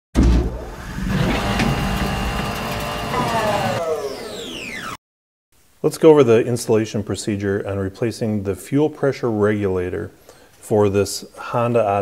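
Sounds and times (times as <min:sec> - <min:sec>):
car engine starting and running: 0:00.4 - 0:04.9.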